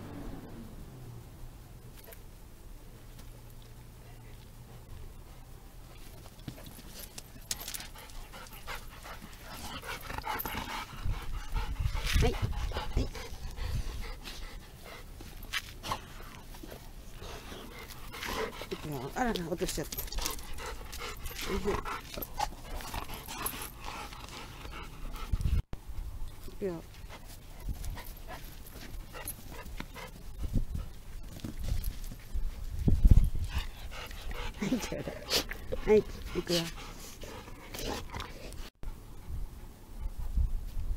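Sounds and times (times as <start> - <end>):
dog panting: 6.4 - 25.6, 32.2 - 38.7.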